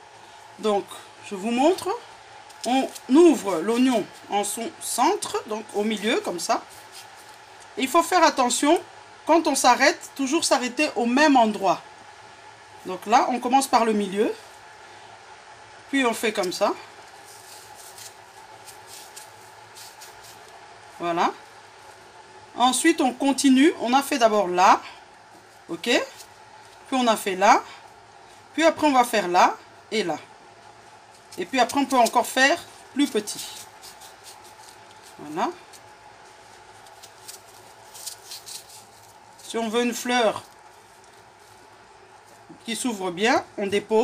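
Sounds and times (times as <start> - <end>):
steady low hum: 0.0 - 44.0
knife cutting onion: 33.0 - 35.9.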